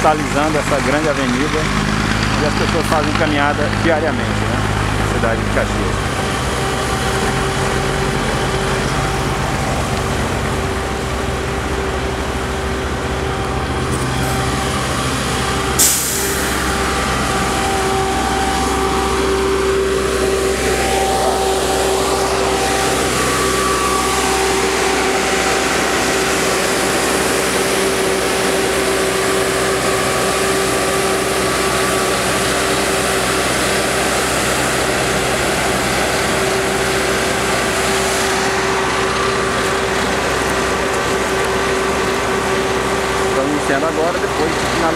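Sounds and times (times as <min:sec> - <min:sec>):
constant machine whine: 0:00.0 - 0:44.9
paving machinery diesel engines: 0:00.0 - 0:44.9.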